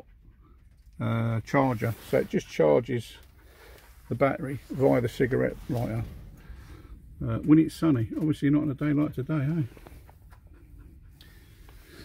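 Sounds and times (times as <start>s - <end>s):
low rumble: 3.2s - 12.0s.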